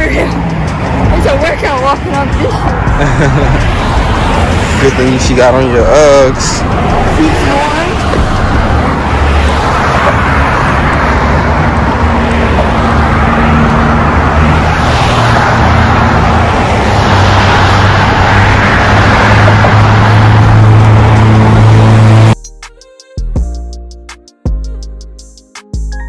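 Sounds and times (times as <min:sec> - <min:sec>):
music: 0:00.0 - 0:08.5, 0:22.3 - 0:26.0
road traffic noise: 0:00.0 - 0:22.4.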